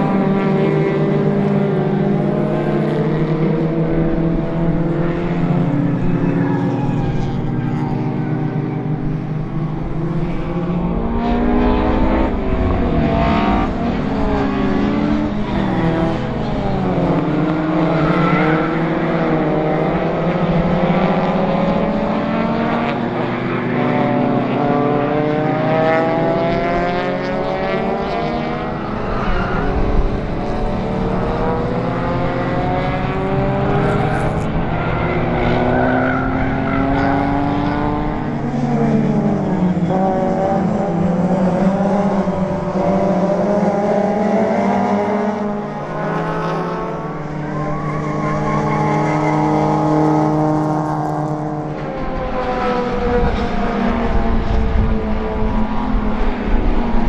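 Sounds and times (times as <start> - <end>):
race car engines revving: 0.0 - 57.0.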